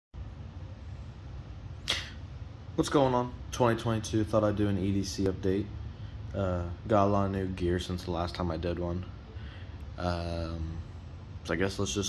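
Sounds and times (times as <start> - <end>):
low room hum: 0.2 - 12.0.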